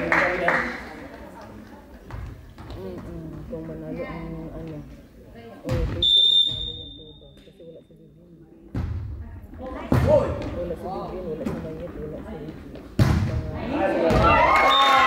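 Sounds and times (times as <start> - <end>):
referee's whistle: 6.0 - 7.4
volleyball struck with sharp slaps: 13.0 - 13.4, 14.0 - 14.5.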